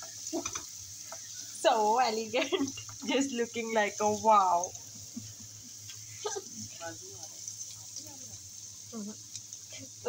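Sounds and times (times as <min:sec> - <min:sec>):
garlic sizzling in hot oil: 0:00.0 - 0:10.0.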